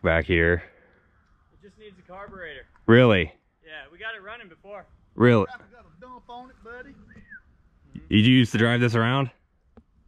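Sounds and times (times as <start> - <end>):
distant man talking: 0.0 - 0.7, 1.6 - 7.2, 8.0 - 9.3
whistle-like note: 7.0 - 7.5.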